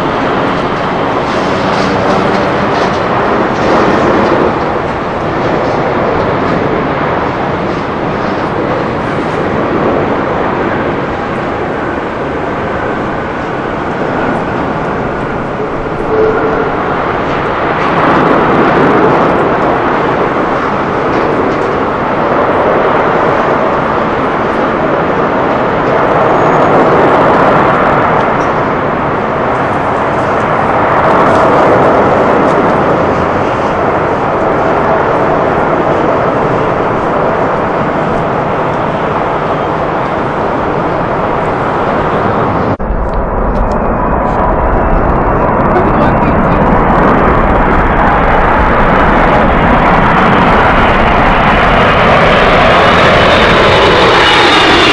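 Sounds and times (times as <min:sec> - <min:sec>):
jet engines roaring: 0:00.0 - 0:54.9.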